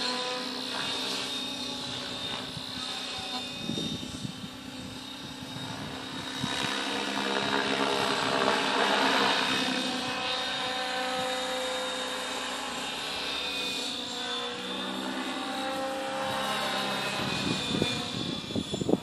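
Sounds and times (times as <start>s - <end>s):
rc helicopter motor and rotor whine: 0.0s - 19.0s.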